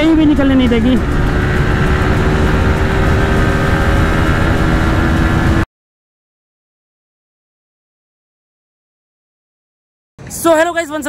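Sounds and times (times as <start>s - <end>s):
motorcycle engine at full throttle: 0.0s - 5.7s.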